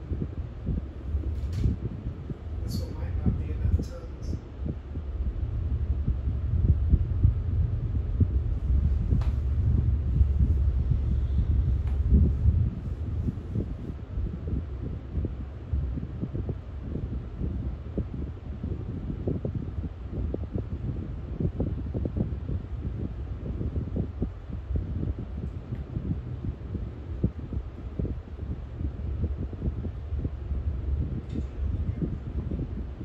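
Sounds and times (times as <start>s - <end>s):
diesel engine rumble: 0.0s - 16.0s.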